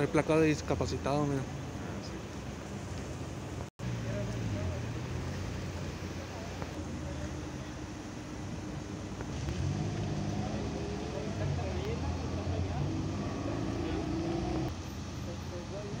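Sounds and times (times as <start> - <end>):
people talking in background: 0.0 - 16.0
vehicle engine idling: 1.6 - 16.0.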